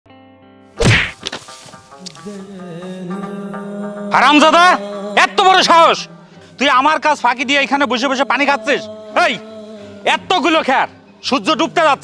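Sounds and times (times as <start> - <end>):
loud hit sound effect: 0.8 - 1.2
held music chord: 1.5 - 11.2.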